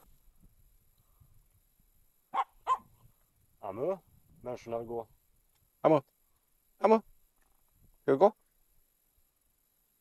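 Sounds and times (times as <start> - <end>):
dog barking high: 2.3 - 2.9.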